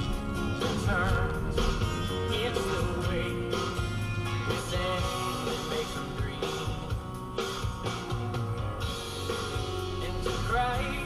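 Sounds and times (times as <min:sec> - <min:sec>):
rock music on car radio: 0:00.0 - 0:11.0.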